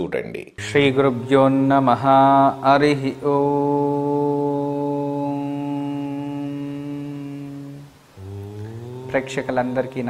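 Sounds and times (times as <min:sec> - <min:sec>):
man chanting om: 0:00.6 - 0:10.0.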